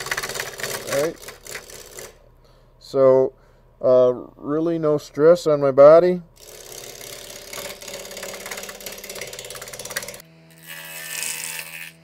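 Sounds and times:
lathe tool rasping on wood: 6.4 - 12.0.

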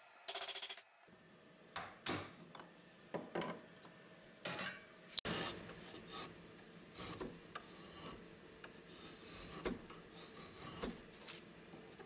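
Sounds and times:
rasping strokes on wood: 7.0 - 11.0.

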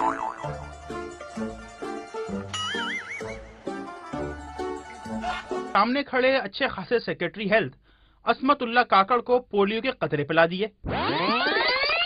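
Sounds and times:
cartoon boing sound effects: 0.0 - 0.6, 2.6 - 3.3
comic plucked-string music: 0.0 - 5.8.

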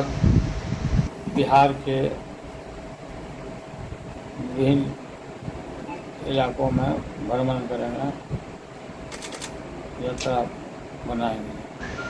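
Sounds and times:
sharp light clicks: 9.1 - 9.6.

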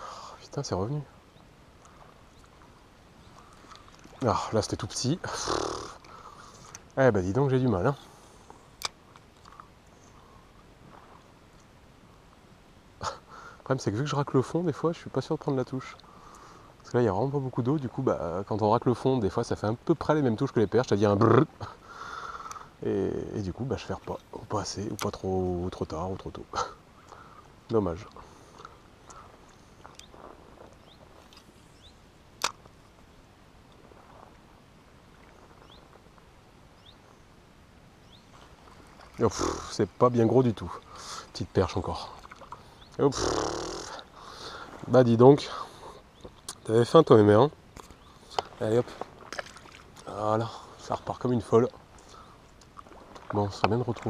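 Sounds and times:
river background: 0.0 - 54.0.

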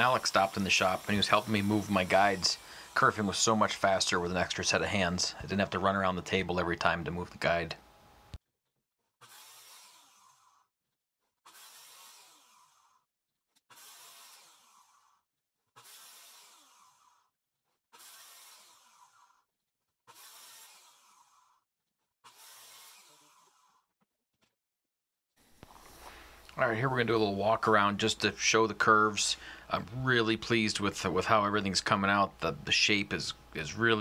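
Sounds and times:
circular saw cutting plywood: 0.0 - 7.8, 9.0 - 24.0.

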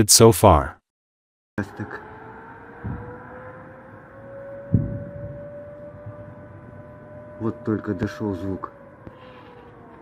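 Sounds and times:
air-raid siren rising: 1.6 - 10.0
sudden thump: 2.8 - 3.1, 4.7 - 5.4.

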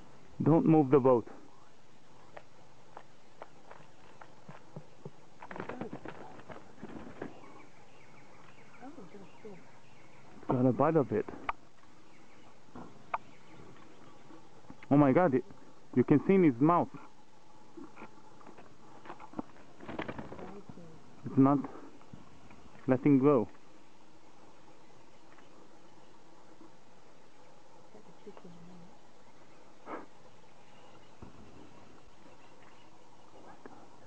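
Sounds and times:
steady outdoor hiss: 0.0 - 34.0.

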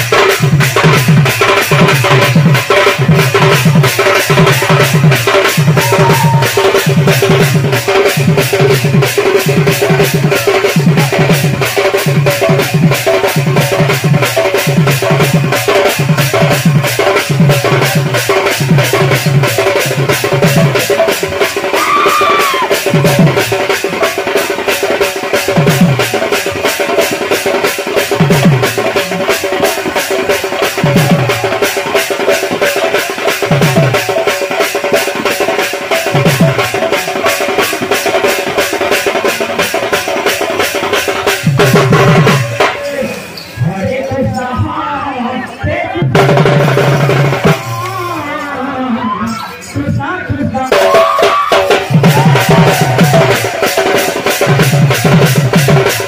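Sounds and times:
fast clicking percussion beat: 0.0 - 44.8, 45.4 - 56.0.

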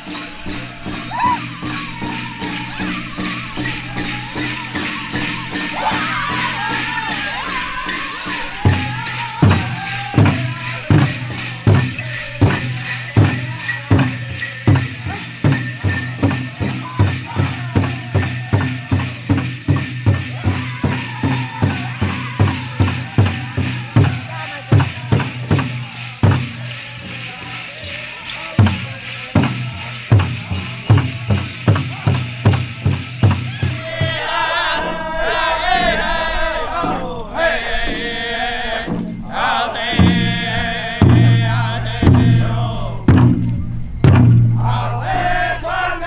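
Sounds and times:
drum beating steady rhythm: 0.0 - 44.8
jingling bells and metal cones: 0.0 - 46.0
people singing: 0.0 - 46.0.

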